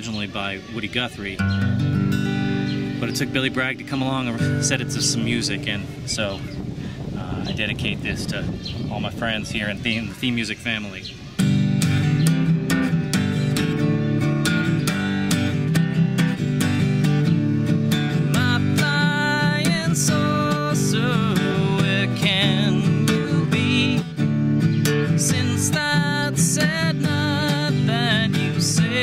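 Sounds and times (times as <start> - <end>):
acoustic guitar strumming: 0.0 - 9.1, 11.1 - 29.0.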